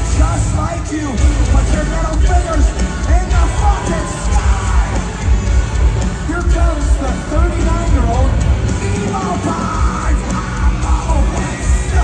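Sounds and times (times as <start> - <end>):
live rock band playing: 0.0 - 12.0
pounding drums: 0.0 - 12.0
singer's vocals: 0.0 - 12.0.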